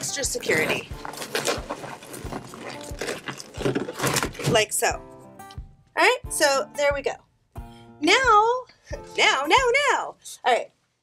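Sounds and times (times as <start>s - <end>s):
balloons rubbing and squeaking: 0.2s - 4.6s.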